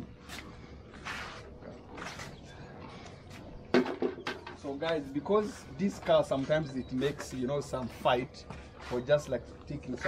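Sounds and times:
footsteps on dirt path: 4.6s - 10.0s.

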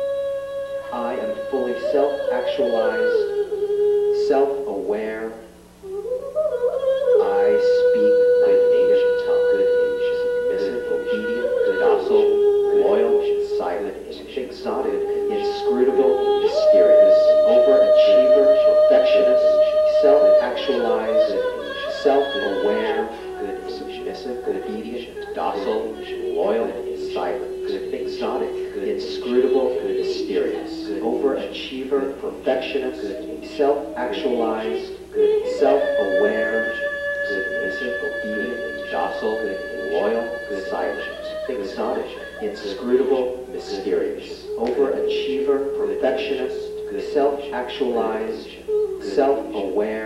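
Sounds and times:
steady held tone: 0.0s - 50.0s
voices singing: 0.0s - 50.0s
person making wordless cries: 14.7s - 50.0s.

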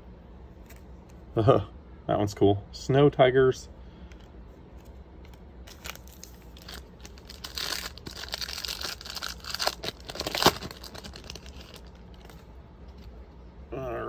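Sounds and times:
sharp wrapper crack: 5.2s - 12.4s
wrapper tearing and crinkling: 5.6s - 12.4s.

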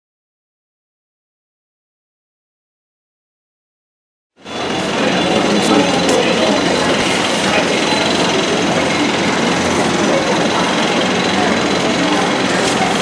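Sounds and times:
steady mechanical noise: 4.4s - 13.0s.

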